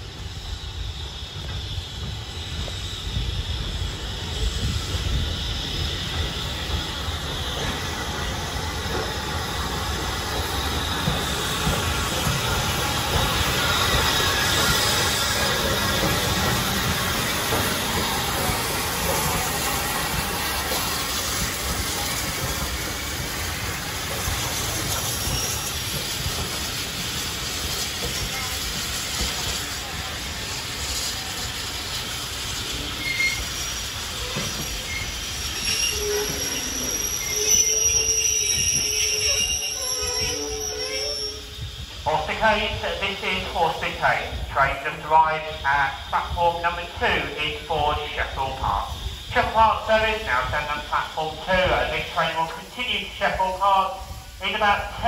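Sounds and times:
train wheels clattering on rail: 0:00.1 - 0:40.8
high brake squeals: 0:24.2 - 0:26.2, 0:32.8 - 0:42.0.

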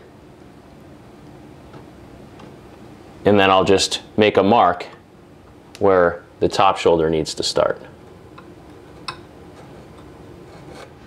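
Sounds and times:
knife scratching wood: 0:08.8 - 0:11.0.

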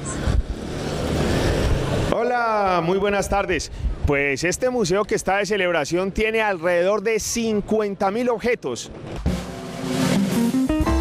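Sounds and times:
steady rushing noise: 0:00.0 - 0:04.8.

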